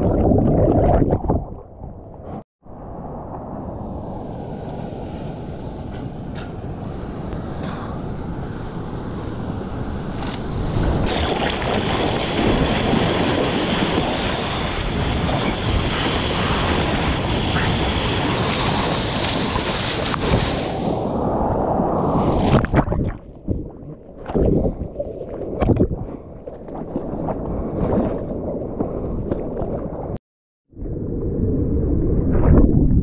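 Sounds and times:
wind on microphone: 2.7 - 26.2, 26.9 - 33.0
rush of water: 9.0 - 23.6
seawater sloshing and splashing: 10.8 - 20.7, 22.2 - 30.2.

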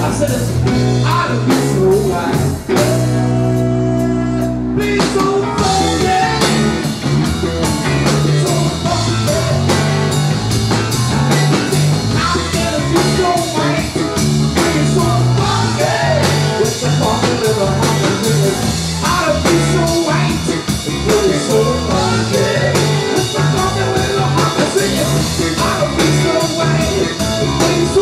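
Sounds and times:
man singing: 0.0 - 7.0, 7.8 - 28.0
bass guitar: 0.0 - 28.0
drum kit: 0.0 - 28.0
electric guitar: 0.0 - 28.0.

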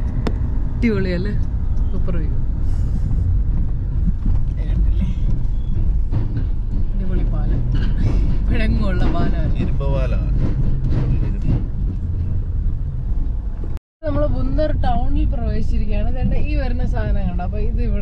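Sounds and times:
car engine and tyre rumble: 0.0 - 18.0
people talking: 0.8 - 1.4, 4.6 - 5.3, 7.0 - 10.3, 14.0 - 18.0.

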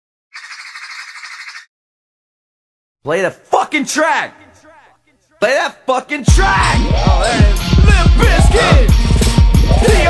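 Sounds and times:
harsh rasping squawk: 0.3 - 1.7.

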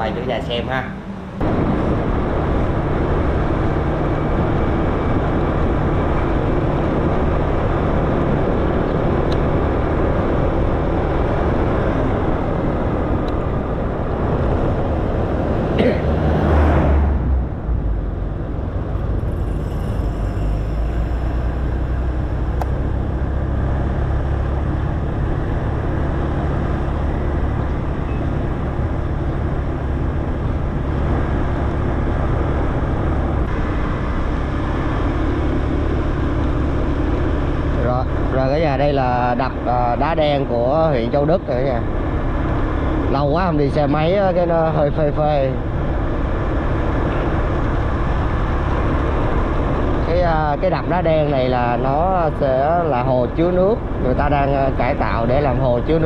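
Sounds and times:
loud whoosh: 0.0 - 37.8
wind and road noise: 0.0 - 56.0
scooter engine: 17.4 - 39.4.

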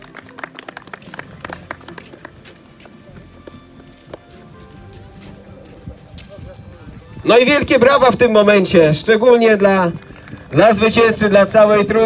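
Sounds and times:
crowd clapping: 0.0 - 4.3, 9.5 - 11.9
faint background music: 0.0 - 12.0.

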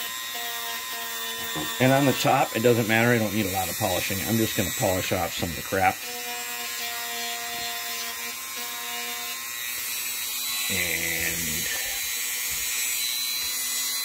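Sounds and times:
rotary tool wire brushing metal: 0.0 - 14.0.

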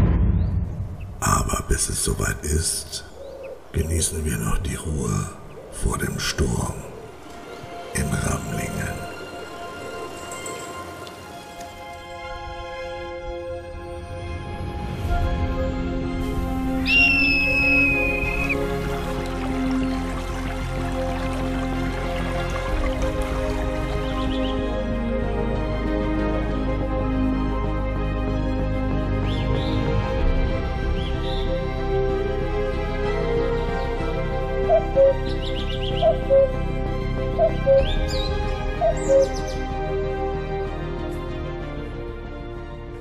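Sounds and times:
calm instrumental music: 1.8 - 43.0
bird of prey whistled call: 16.8 - 18.6, 38.8 - 39.5.

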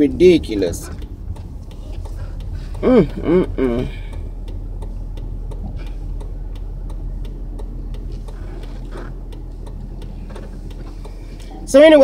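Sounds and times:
light even ticking: 0.0 - 12.0
low hum in car cabin: 0.0 - 12.0.

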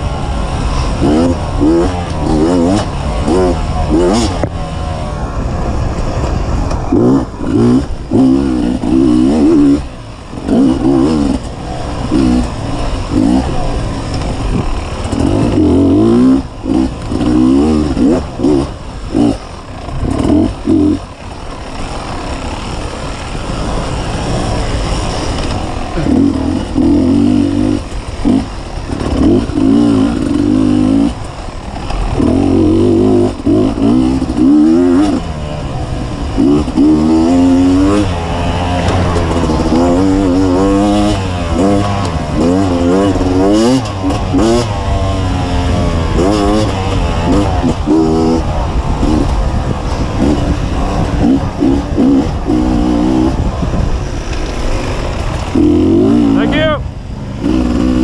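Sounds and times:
dirt bike engine revving: 0.0 - 58.0.

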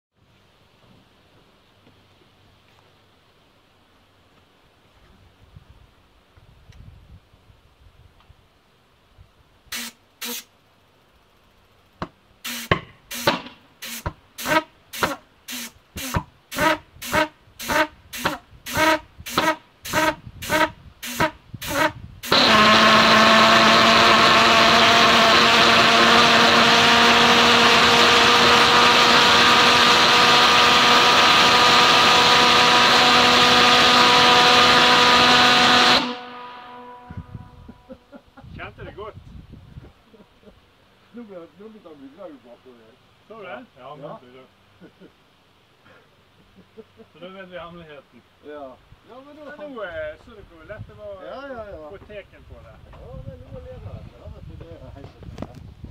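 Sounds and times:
pulsejet sharp pops: 12.0 - 22.6
pulsejet loud steady drone: 12.4 - 37.6.

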